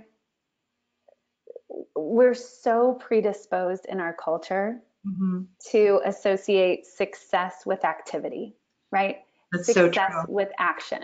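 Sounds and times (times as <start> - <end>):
woman hesitating: 9.6 - 10.3.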